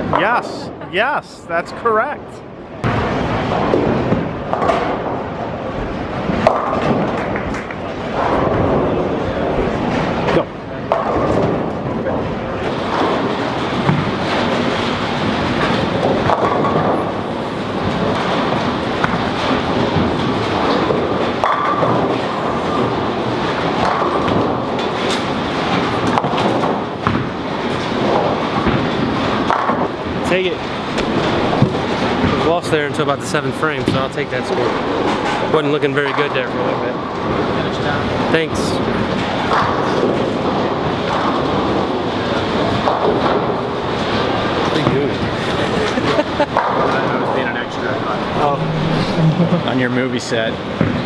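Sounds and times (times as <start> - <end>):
bowling balls rolling: 0.0 - 1.9, 2.6 - 51.0
murmur of voices: 41.8 - 51.0.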